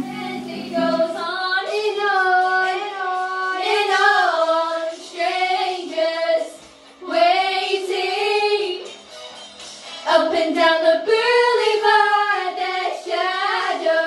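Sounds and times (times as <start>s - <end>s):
guitar music: 0.0s - 1.5s
girls singing together: 0.0s - 8.9s, 10.1s - 14.0s.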